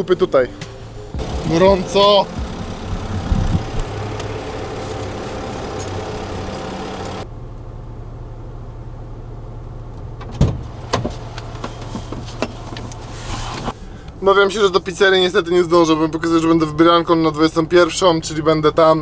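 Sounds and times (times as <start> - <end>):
van engine humming: 0.0 - 19.0.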